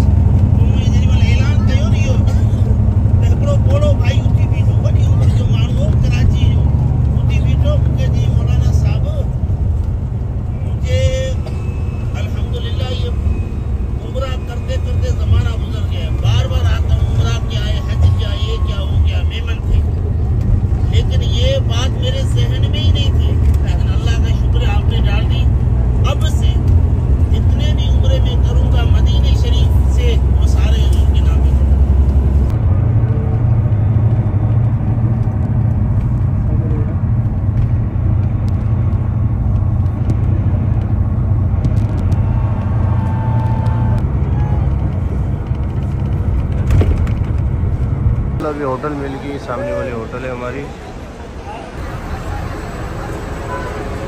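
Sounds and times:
bus engine and road rumble: 0.0s - 54.0s
man talking: 0.6s - 9.3s, 14.0s - 20.0s, 48.4s - 50.8s.

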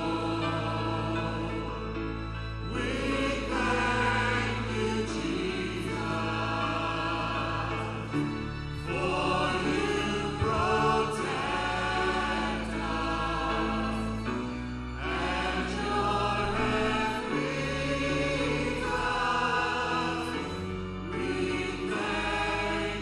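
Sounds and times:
keyboard accompaniment: 0.0s - 23.0s
voices singing together: 0.0s - 23.0s.

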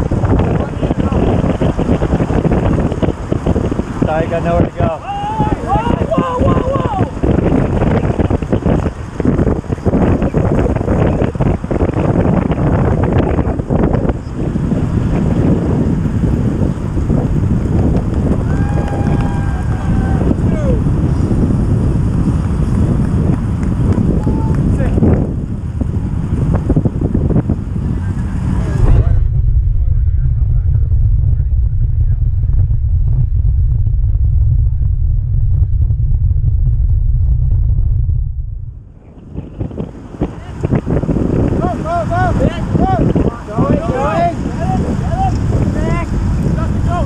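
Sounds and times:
wind rumbling over microphone: 0.0s - 47.0s.

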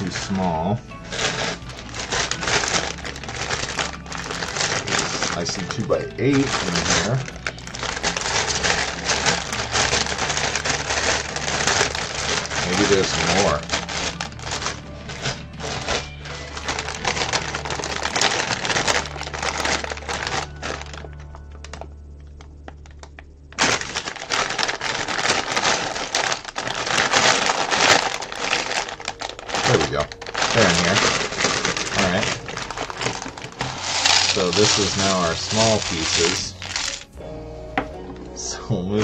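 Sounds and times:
plastic bricks clattering: 0.0s - 21.9s, 22.7s - 37.2s
plastic bag crinkling: 0.0s - 37.2s
background music: 0.0s - 39.0s.

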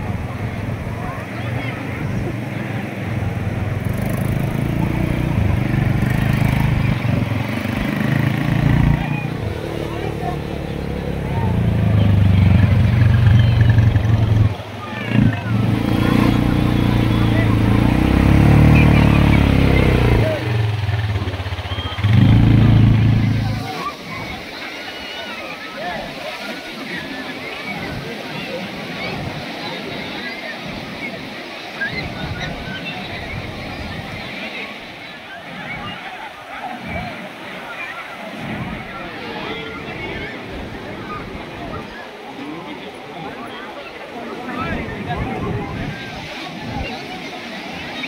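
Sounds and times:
crowd voices: 0.0s - 48.0s
quad bike engine running: 2.3s - 23.8s.

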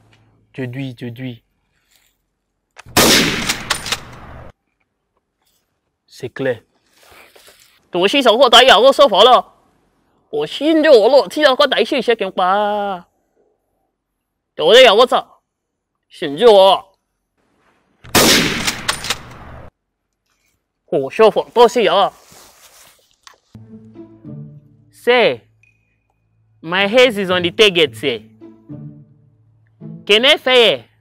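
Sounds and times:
sharp cracks: 2.7s - 4.5s, 18.0s - 19.7s
gunshots: 2.8s - 4.5s, 18.0s - 19.7s.

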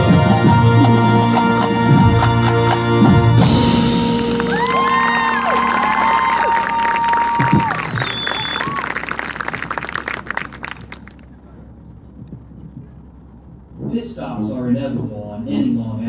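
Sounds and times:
stadium crowd cheering and clapping: 3.4s - 11.4s
rising and falling whistles: 4.6s - 9.8s.

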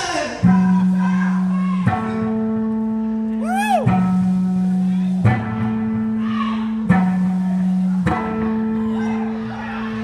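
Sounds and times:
gospel band playing: 0.0s - 10.0s.

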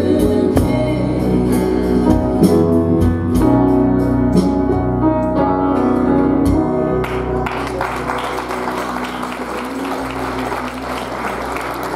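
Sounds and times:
piano and band chord: 0.0s - 11.9s
audience applauding: 7.0s - 11.9s.

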